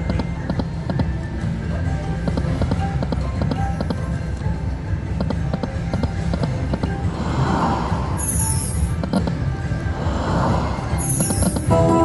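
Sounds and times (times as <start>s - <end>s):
slot machine game music: 8.2s - 9.0s, 11.0s - 12.0s.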